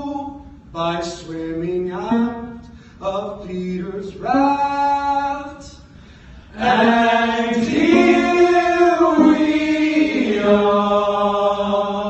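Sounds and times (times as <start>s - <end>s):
men singing sustained chords: 6.5s - 12.0s.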